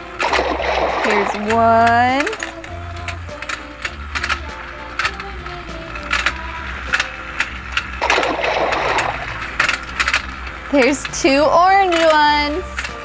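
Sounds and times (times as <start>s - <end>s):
simple toy melody: 0.0s - 13.0s
toy motor clicking: 0.0s - 13.0s.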